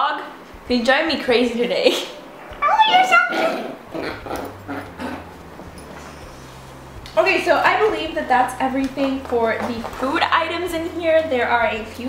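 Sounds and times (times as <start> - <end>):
dog whimpering: 3.3 - 5.8.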